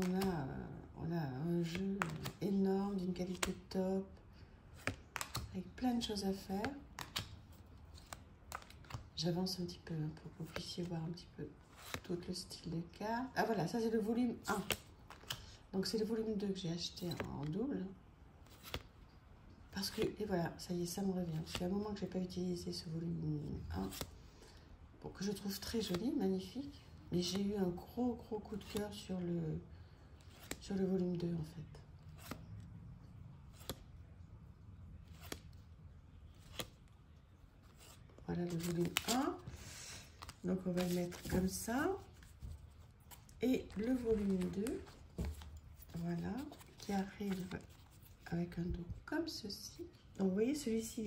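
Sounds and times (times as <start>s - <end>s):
low room hum: 0.0s - 51.0s.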